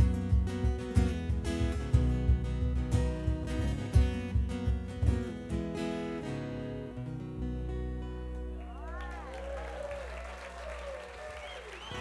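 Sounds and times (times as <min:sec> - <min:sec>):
voices cheering: 0:08.5 - 0:12.0
audience applause: 0:08.6 - 0:12.0.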